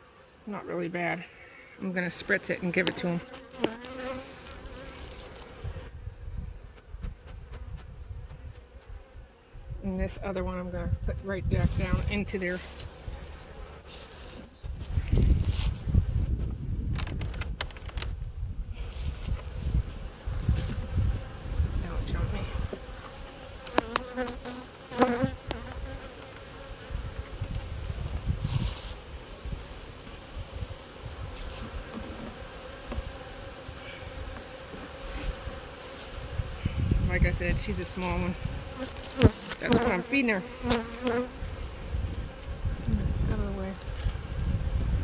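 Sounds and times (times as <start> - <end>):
bees buzzing: 0.0 - 14.6, 18.8 - 45.0.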